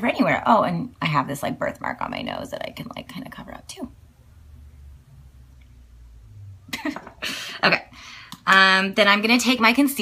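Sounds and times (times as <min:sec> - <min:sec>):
woman laughing: 0:06.7 - 0:07.8.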